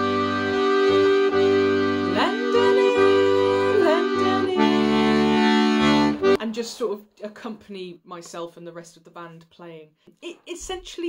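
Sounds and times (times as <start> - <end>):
button accordion playing chords: 0.0 - 6.4.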